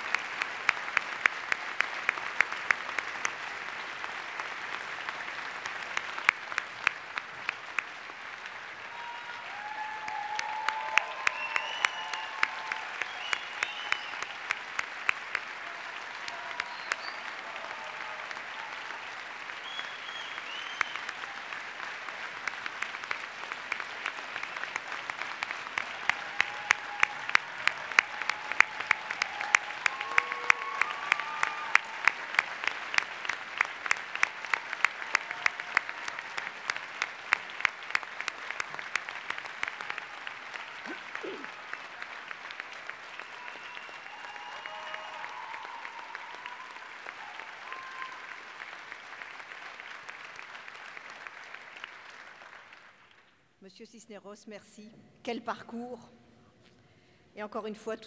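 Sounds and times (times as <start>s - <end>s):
audience applauding: 0.0s - 53.4s.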